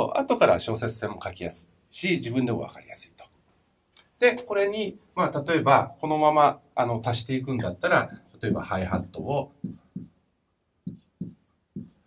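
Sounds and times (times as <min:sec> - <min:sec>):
marker writing on whiteboard: 0:08.0 - 0:10.2, 0:10.8 - 0:12.0.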